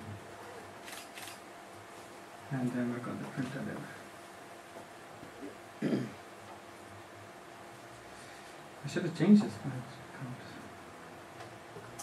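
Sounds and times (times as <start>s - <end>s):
faint room noise: 0.0s - 12.0s.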